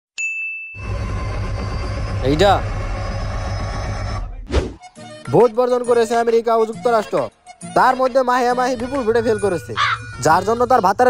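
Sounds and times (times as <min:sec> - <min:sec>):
bright ding: 0:00.2 - 0:00.8.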